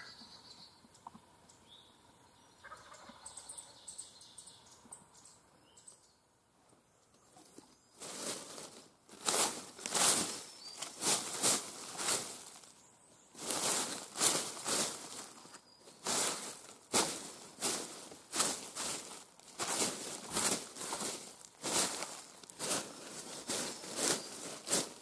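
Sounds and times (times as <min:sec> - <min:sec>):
footsteps crunching dry leaves: 0:08.0 - 0:25.0.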